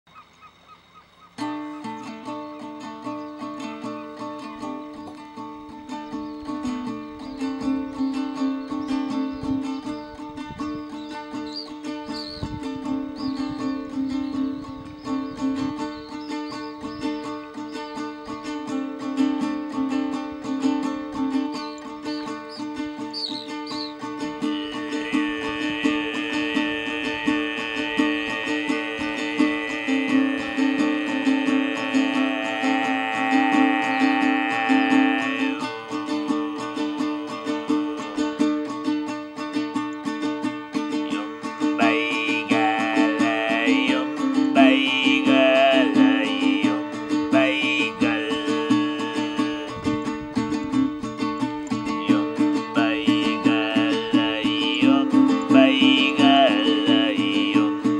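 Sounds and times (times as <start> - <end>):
small string instrument strummed: 1.4 - 57.9
throat-sung drone: 21.8 - 38.8, 40.8 - 50.7, 51.3 - 57.9
high overtone melody: 23.5 - 38.9.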